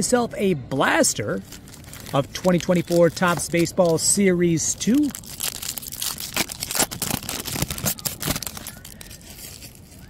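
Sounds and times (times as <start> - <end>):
foil wrapper tearing and crinkling: 1.4 - 4.1, 4.7 - 10.0.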